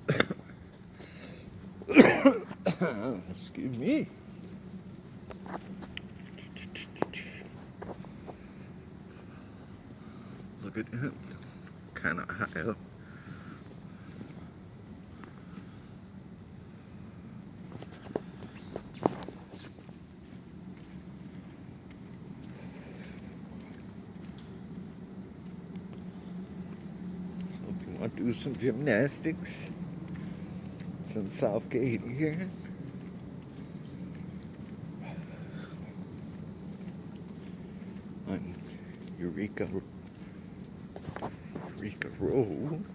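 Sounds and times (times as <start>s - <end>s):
steady low hum: 0.0s - 42.9s
faint light ticks: 19.8s - 28.7s, 29.3s - 42.6s.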